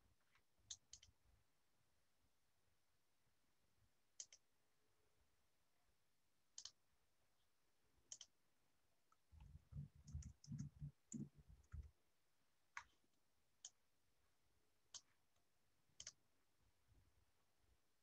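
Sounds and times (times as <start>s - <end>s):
soft low thuds and clicks: 9.1s - 12.0s.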